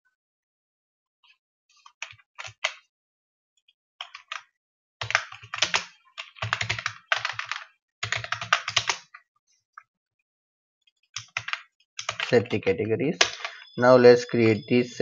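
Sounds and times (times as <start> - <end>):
keystrokes on computer keyboard: 1.9 - 2.8, 4.0 - 9.1, 11.2 - 13.8.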